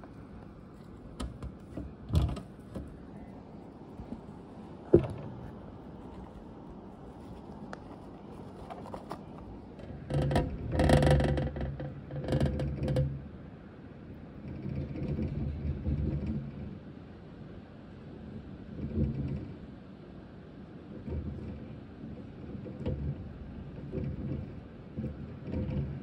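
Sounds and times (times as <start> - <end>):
hamster wheel rumbling and whirring: 0.0 - 26.0.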